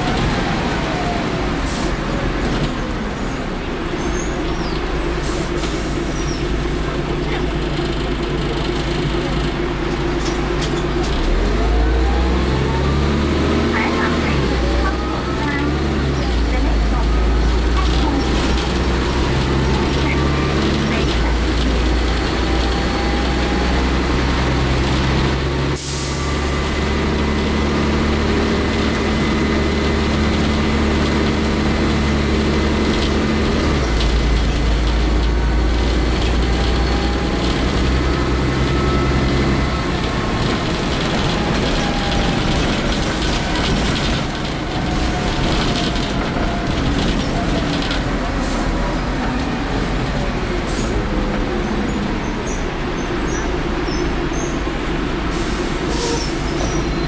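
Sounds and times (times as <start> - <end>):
bus diesel engine: 0.0 - 57.0.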